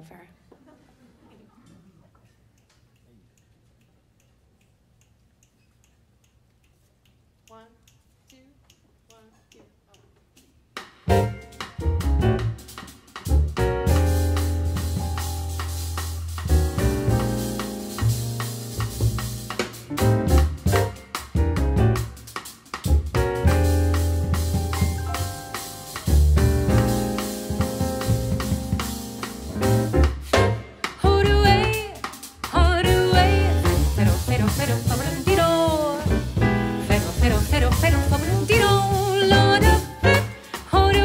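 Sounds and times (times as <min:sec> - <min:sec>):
faint ticking: 0:02.4 - 0:10.9
drum kit: 0:10.6 - 0:41.0
upright double bass: 0:11.1 - 0:22.2, 0:22.8 - 0:41.0
grand piano: 0:11.1 - 0:41.0.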